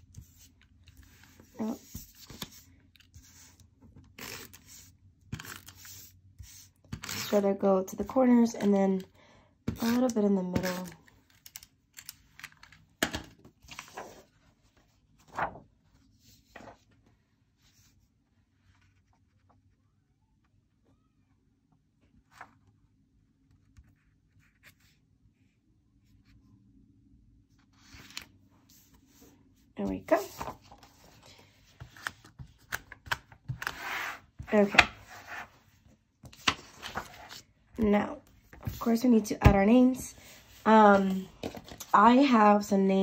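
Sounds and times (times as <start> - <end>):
paper rustling: 13.5 - 17.0, 36.2 - 37.5.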